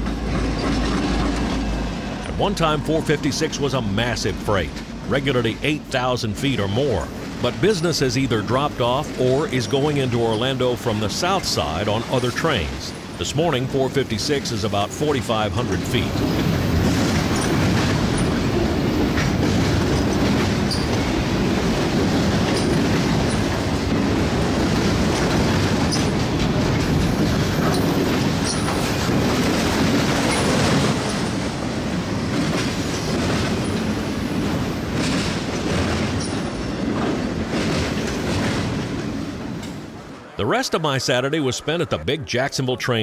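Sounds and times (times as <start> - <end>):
freight train wheels rumbling: 0.0 - 40.9
wheels clicking over rail joints: 15.5 - 39.9.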